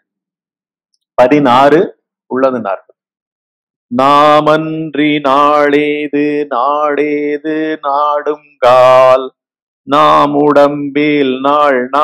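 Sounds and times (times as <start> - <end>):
man chanting: 1.2 - 2.8, 3.9 - 9.3, 9.9 - 12.0.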